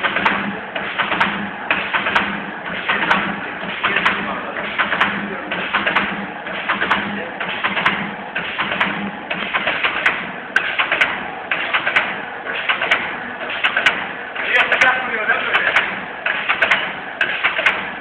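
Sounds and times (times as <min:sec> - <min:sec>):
cookie depositing machine clattering: 0:00.0 - 0:18.0.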